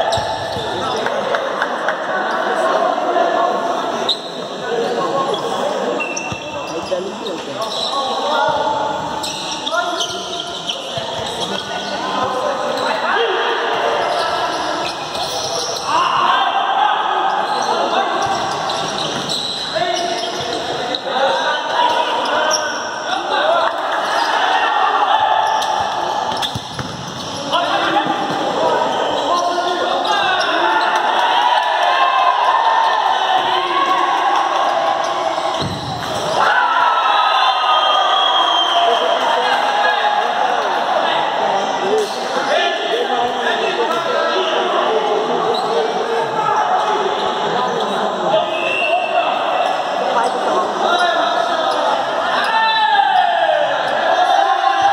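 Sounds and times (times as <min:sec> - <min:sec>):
players shouting with echo: 0:08.0 - 0:47.6, 0:48.2 - 0:54.9
ball kicked and bouncing: 0:26.3 - 0:27.2, 0:35.6 - 0:36.1.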